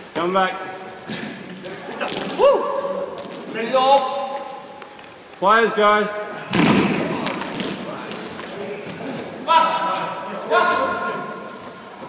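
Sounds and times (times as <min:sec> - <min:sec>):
players' voices: 0:05.4 - 0:12.0.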